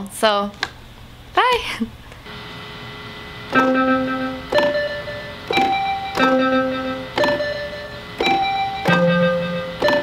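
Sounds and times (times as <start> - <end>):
piano chords: 3.3 - 10.0.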